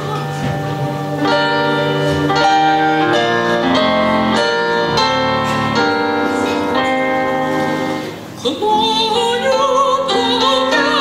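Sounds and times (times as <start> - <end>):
digital piano chords: 0.0 - 11.0.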